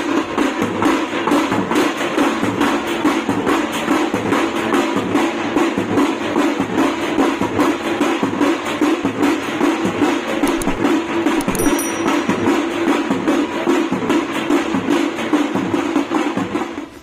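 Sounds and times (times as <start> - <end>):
drums beating fast rhythm: 0.0 - 17.0.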